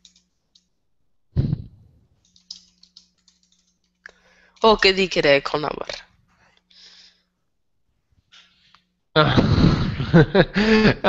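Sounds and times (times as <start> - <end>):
keyboard typing: 0.0 - 0.8, 2.2 - 6.0
faint steady hum: 0.0 - 11.0.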